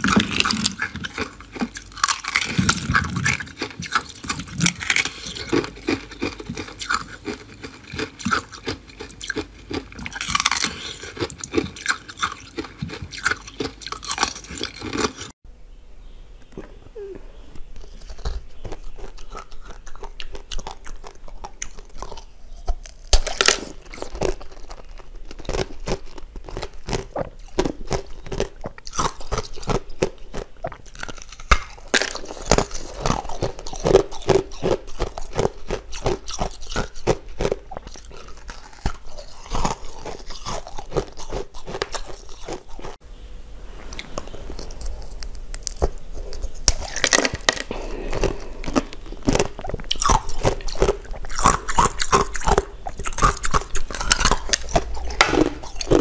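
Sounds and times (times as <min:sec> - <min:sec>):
ice crunching while chewed: 0:00.0 - 0:15.4, 0:17.7 - 0:43.0, 0:43.9 - 0:56.0.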